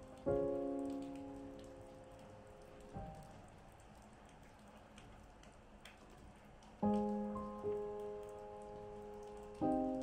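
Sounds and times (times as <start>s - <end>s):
piano chord: 0.0s - 3.3s, 6.8s - 10.0s
steady rain: 0.0s - 10.0s.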